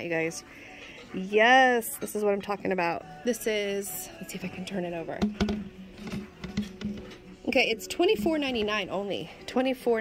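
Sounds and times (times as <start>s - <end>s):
background music with held tones: 0.0s - 10.0s
knocks and clicks of decoration: 5.2s - 7.2s.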